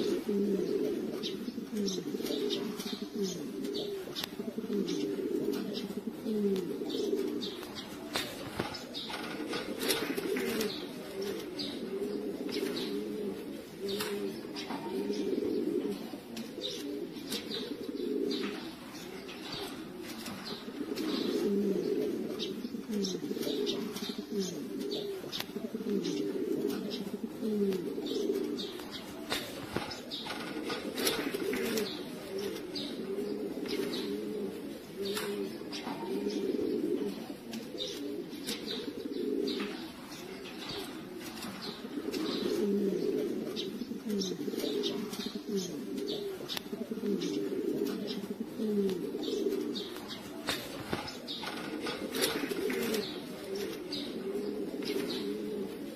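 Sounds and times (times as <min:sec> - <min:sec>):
pigeons cooing: 0:00.0 - 0:55.9.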